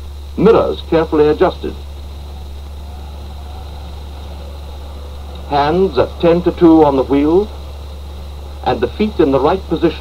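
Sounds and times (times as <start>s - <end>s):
faint hiss: 0.0s - 10.0s
low hum: 0.0s - 10.0s.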